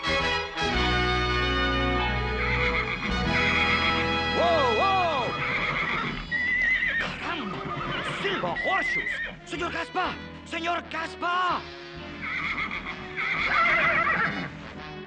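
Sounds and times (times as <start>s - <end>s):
background music: 0.0s - 15.0s
horse whinnying loudly: 1.8s - 9.4s, 12.2s - 14.8s.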